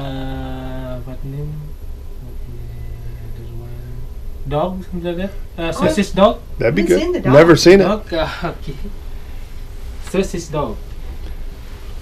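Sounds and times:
man hesitating uhh and mm: 0:00.0 - 0:04.2.

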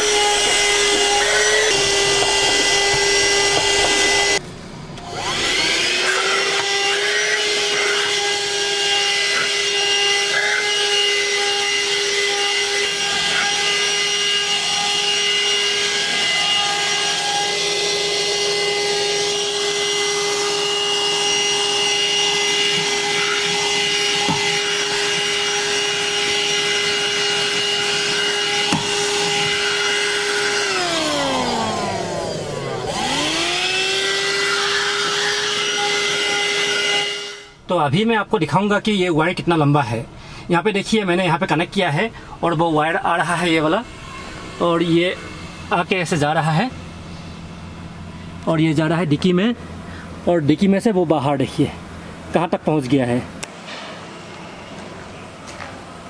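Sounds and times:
handheld vacuum cleaner running: 0:00.0 - 0:04.4, 0:05.0 - 0:37.5.

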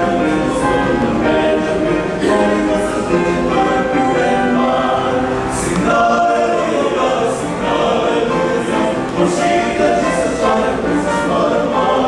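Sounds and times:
male choir singing in harmony: 0:00.0 - 0:12.0.

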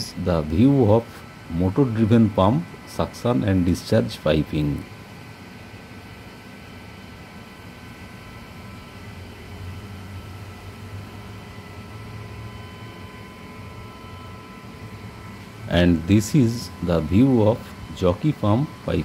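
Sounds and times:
electric pump humming: 0:00.0 - 0:19.0.

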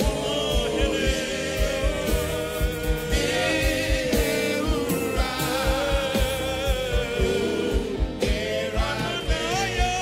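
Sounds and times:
band with low drum beat: 0:00.0 - 0:10.0
choir singing gospel song: 0:00.0 - 0:10.0.

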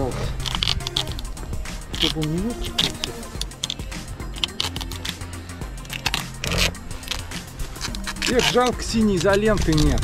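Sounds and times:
background music: 0:00.0 - 0:10.0
adhesive tape tearing and crackling: 0:00.1 - 0:05.2, 0:05.8 - 0:10.0.

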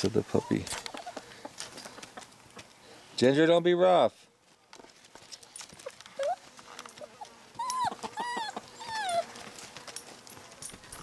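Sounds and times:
puppy yelping: 0:05.8 - 0:06.4, 0:07.0 - 0:09.4.

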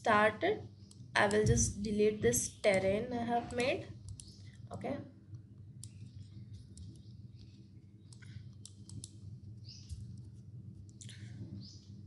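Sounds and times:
low steady hum: 0:00.0 - 0:12.0
computer mouse clicks: 0:00.8 - 0:01.5, 0:02.7 - 0:04.7, 0:05.3 - 0:11.2.

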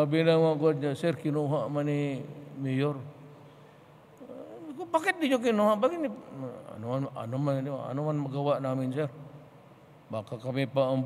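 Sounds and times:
man speaking into a microphone: 0:00.0 - 0:03.2, 0:04.2 - 0:09.2, 0:10.1 - 0:11.0.

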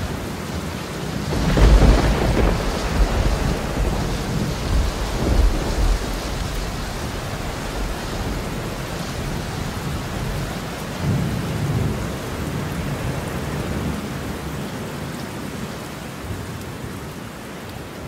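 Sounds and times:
steady rain: 0:00.0 - 0:18.0
rolling thunder: 0:01.2 - 0:13.1.

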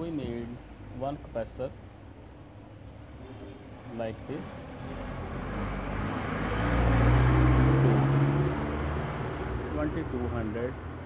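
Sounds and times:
vehicle passing by: 0:04.3 - 0:11.0.

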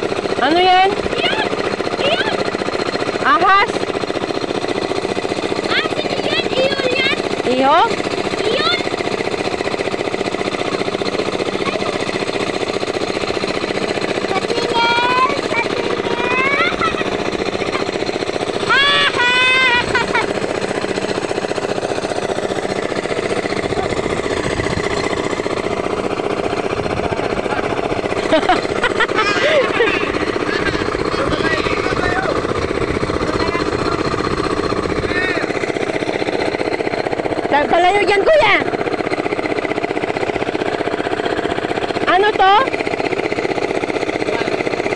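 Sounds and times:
boat engine running: 0:00.0 - 0:44.9
people calling out: 0:18.6 - 0:20.4, 0:28.9 - 0:32.5.

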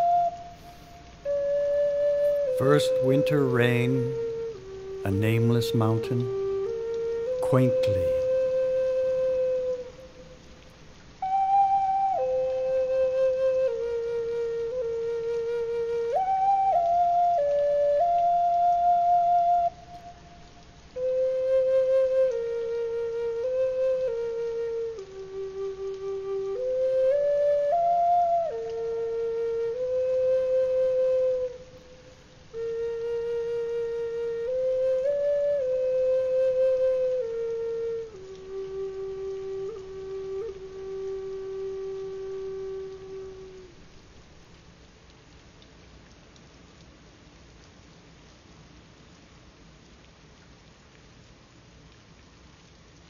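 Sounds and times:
solo flute melody: 0:00.0 - 0:46.2.

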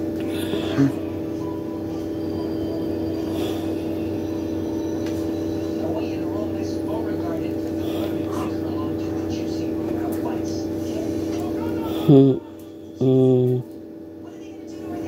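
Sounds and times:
steady hum of fixed tones: 0:00.0 - 0:15.0
faint voices: 0:05.6 - 0:15.0.

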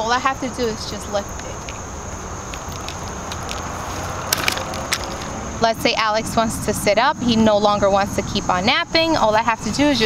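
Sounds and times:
stroller frame unfolding: 0:02.7 - 0:05.3.

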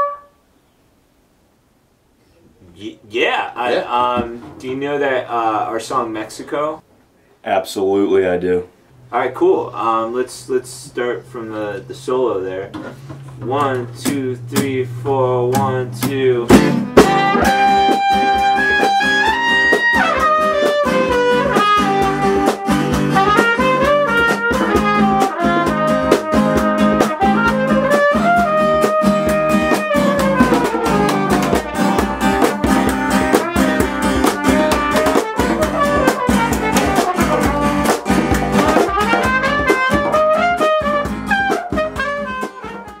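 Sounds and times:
recorder melody: 0:00.0 - 0:00.5, 0:16.5 - 0:43.0
drums: 0:03.2 - 0:07.0, 0:12.6 - 0:43.0
strummed acoustic guitar: 0:11.3 - 0:43.0.

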